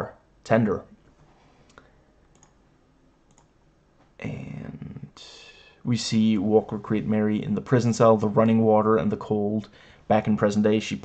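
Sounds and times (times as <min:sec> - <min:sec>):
faint clicks: 0:01.2 - 0:02.6, 0:03.2 - 0:04.1.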